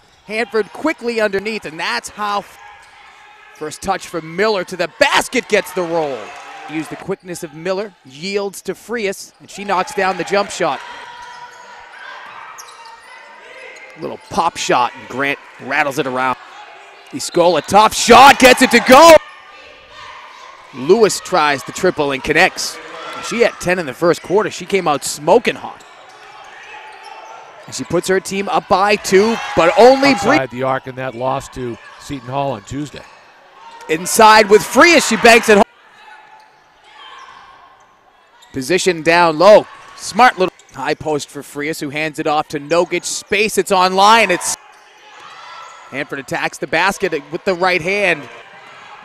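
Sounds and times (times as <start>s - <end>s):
shoe squeaks: 12.4s - 14.6s.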